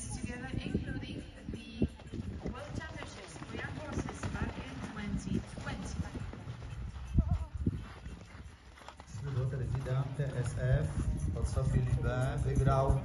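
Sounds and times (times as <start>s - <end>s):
horse hoofbeats on turf: 0.3s - 13.0s.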